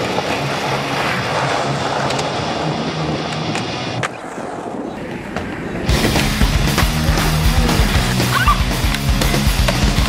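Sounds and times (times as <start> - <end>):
skateboard wheels rolling: 0.0 - 10.0.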